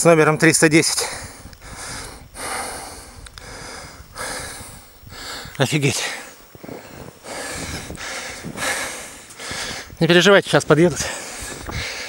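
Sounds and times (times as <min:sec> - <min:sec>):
person breathing: 0:01.0 - 0:10.0, 0:11.0 - 0:12.0.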